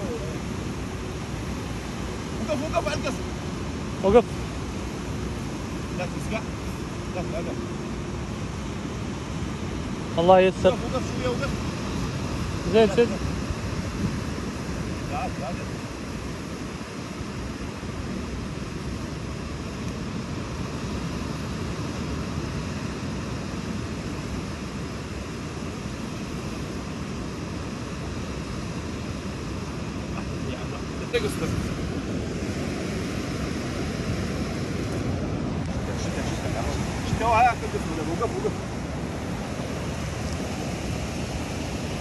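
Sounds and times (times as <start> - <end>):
ocean surf roaring: 0.0 - 42.0
wind buffeting microphone: 0.0 - 42.0.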